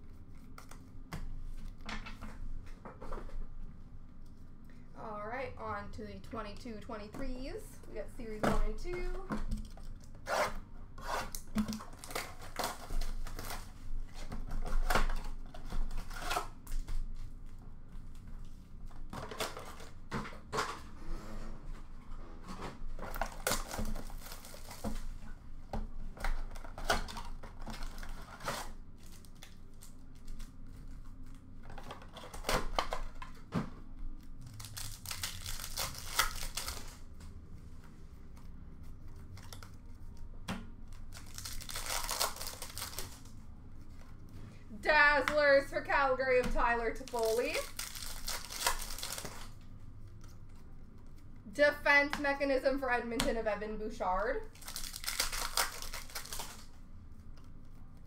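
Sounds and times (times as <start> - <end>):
wrappers tearing: 11.4 - 14.2, 23.1 - 25.1, 34.2 - 37.1, 40.9 - 43.4, 46.9 - 49.6, 54.5 - 56.8
foil wrappers crinkling: 23.0 - 25.2, 26.3 - 33.2, 34.2 - 37.2, 40.9 - 44.1, 46.8 - 51.3, 54.5 - 58.0.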